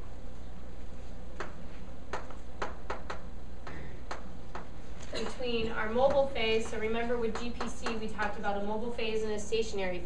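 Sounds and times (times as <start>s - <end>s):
chalk tapping on a chalkboard: 2.1s - 3.2s, 6.1s - 8.0s.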